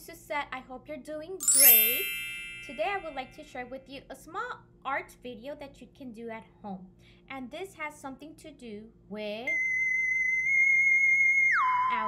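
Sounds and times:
electronic theremin-like tone: 9.6 - 12.0.

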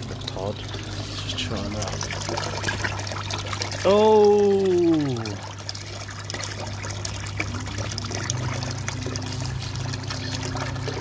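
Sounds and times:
water running into plastic tub: 0.0 - 11.0.

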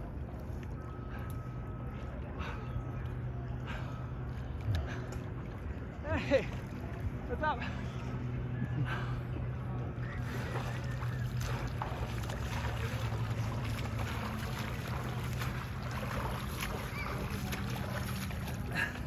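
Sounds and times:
steady low hum: 0.0 - 19.0
water splashing from swimming strokes: 10.2 - 19.0.

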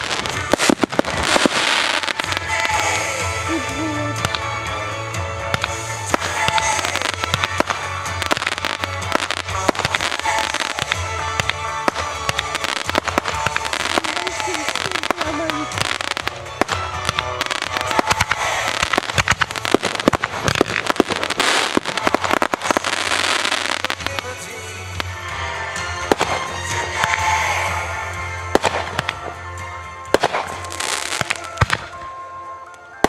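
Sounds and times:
fireworks crackling and popping: 0.0 - 33.0.

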